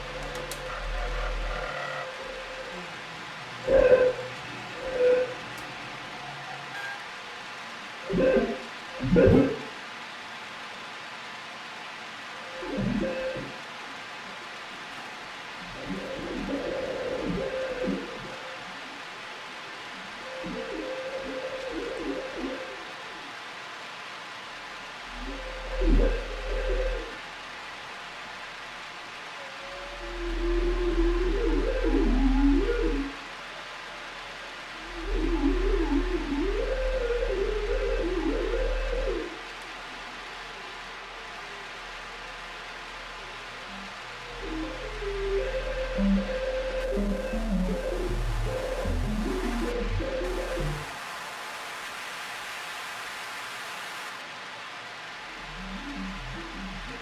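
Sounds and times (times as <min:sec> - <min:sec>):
wavering sliding tones: 0:44.4 - 0:52.2.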